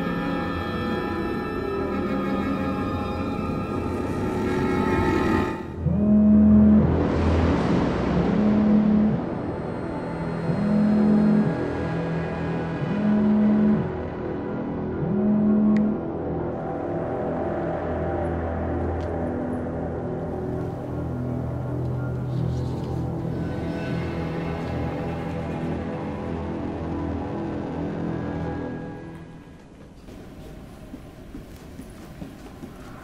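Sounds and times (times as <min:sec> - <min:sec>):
low music drone: 0:00.0 - 0:29.7.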